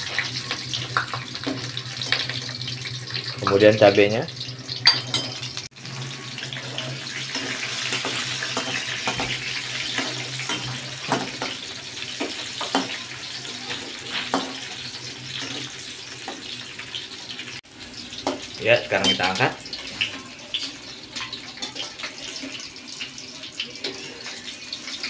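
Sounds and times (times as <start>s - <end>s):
food sizzling in hot oil: 0.0s - 25.0s.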